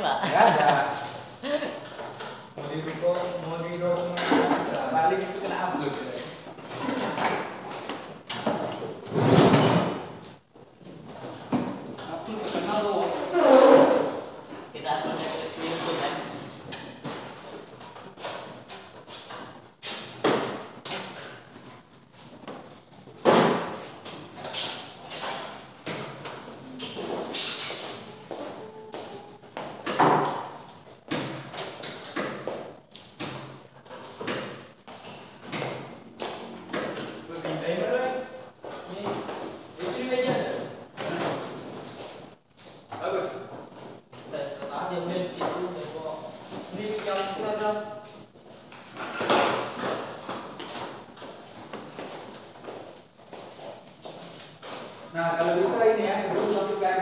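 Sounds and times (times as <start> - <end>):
people talking: 0.0 - 1.8, 2.6 - 6.3, 12.1 - 14.1, 14.8 - 16.4, 55.2 - 57.0.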